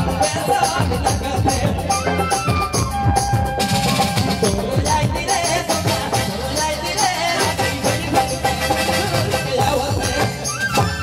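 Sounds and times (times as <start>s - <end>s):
barrel drum rhythm: 0.0s - 11.0s
folk band playing: 0.0s - 11.0s.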